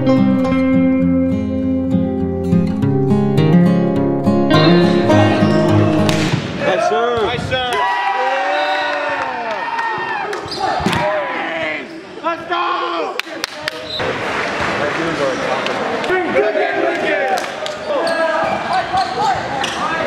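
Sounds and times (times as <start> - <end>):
acoustic guitar music: 0.0 - 6.4
people shouting in a gym: 6.6 - 13.2.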